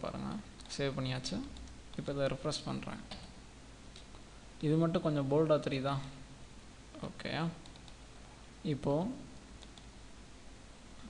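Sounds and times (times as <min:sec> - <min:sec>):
computer clicks: 0:07.6 - 0:08.0, 0:09.6 - 0:09.9.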